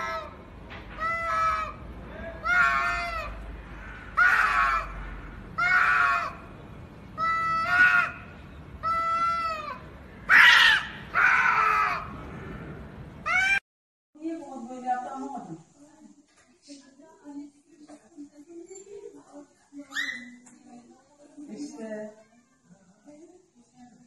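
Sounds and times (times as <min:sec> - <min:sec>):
cats yowling: 0:00.0 - 0:00.4, 0:02.4 - 0:03.4, 0:08.8 - 0:12.1.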